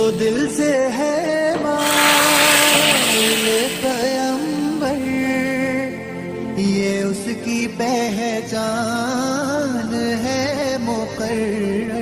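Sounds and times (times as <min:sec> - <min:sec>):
hot oil sizzling in liquid: 0:01.7 - 0:05.6.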